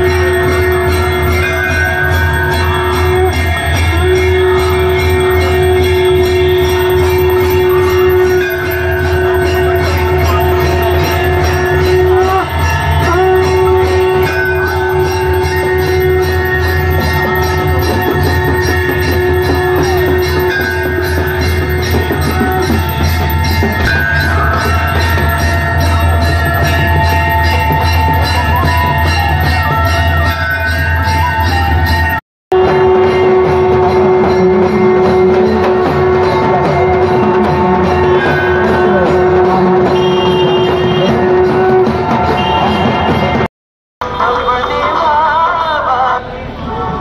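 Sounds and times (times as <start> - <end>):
conch shell blown: 0.0 - 43.5
bells ringing: 0.0 - 44.4
music: 0.0 - 47.0.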